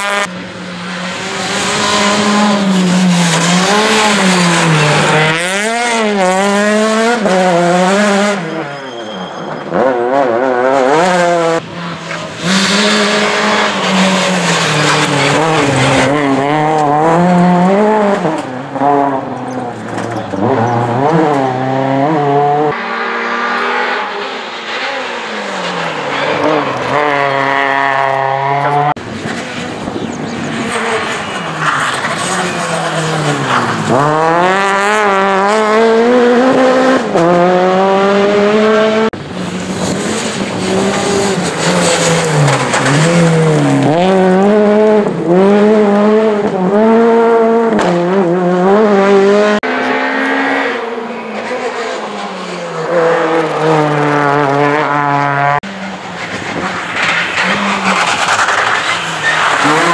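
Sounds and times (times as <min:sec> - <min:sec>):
rally car engines revving: 0:00.0 - 0:59.9
tyres sliding on loose surface: 0:56.2 - 0:59.9.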